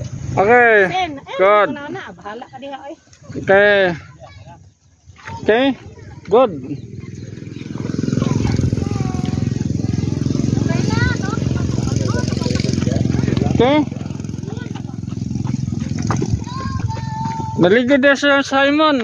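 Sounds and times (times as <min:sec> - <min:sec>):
vehicle engine running: 0:06.0 - 0:17.8.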